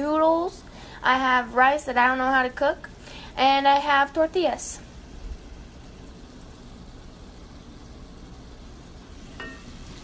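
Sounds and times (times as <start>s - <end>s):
food sizzling in a pan: 0.0s - 10.0s.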